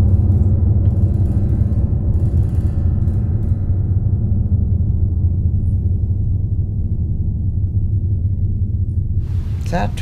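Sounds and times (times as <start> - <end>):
low dark soundtrack drone: 0.0 - 10.0.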